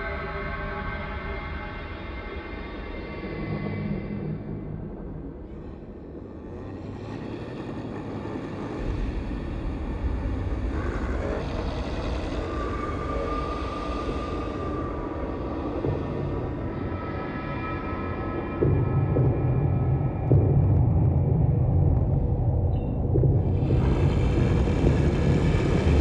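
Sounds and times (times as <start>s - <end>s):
deep low rumble: 18.0s - 26.0s.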